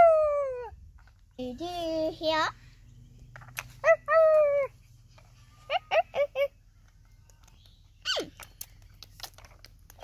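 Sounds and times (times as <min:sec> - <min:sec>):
high puppy-like whines: 0:05.5 - 0:06.5.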